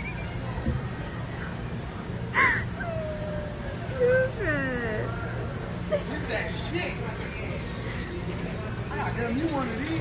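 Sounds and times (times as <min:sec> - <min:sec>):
store hum: 0:00.0 - 0:10.0.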